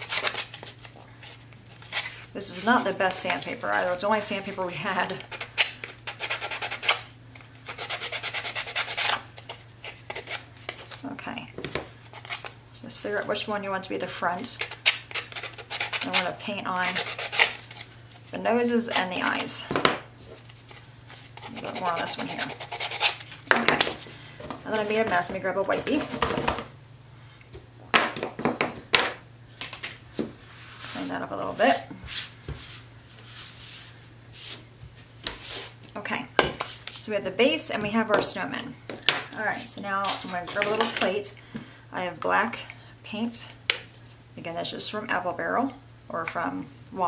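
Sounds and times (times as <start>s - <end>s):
sandpaper rubbing on wood: 21.4s - 23.2s.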